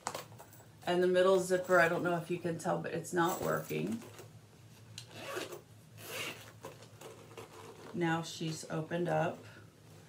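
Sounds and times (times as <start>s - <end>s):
zipper rasping pulls: 5.0s - 8.0s.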